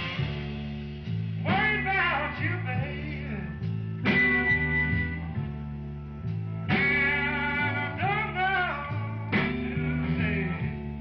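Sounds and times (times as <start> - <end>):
bass line: 0.0 - 11.0
electric blues band playing: 0.0 - 11.0
guitar line bending in pitch: 1.5 - 11.0.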